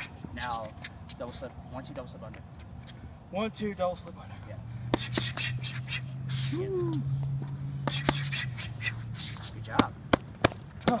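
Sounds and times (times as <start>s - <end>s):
boxing gloves hitting focus mitts: 7.8s - 8.4s, 9.6s - 11.0s.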